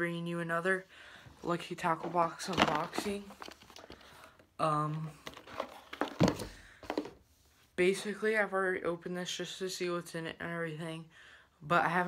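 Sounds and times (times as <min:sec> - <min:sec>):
cardboard box dull thump: 0:06.0 - 0:07.1.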